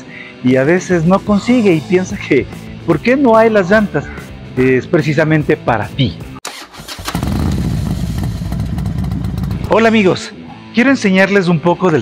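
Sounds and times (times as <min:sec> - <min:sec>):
motorcycle engine rumble: 0:06.6 - 0:10.1.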